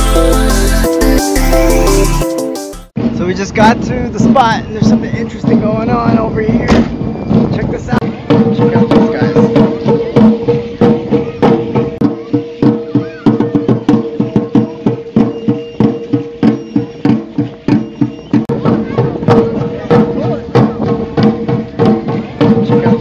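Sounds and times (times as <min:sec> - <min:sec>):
fast drum beats: 0:00.0 - 0:23.0.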